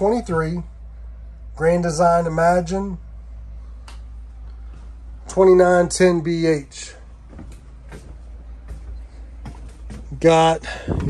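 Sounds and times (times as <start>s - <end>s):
steady low hum: 0.0s - 11.0s
footsteps on trailer floor: 6.9s - 11.0s.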